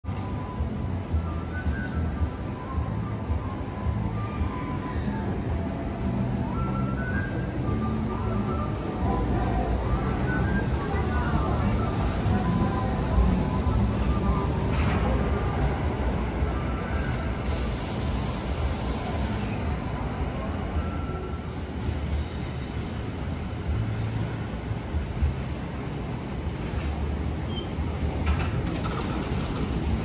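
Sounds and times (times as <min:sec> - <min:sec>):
monorail train rumbling: 0:00.0 - 0:30.0
faint background music: 0:00.1 - 0:28.0
brief high hiss: 0:17.4 - 0:19.6.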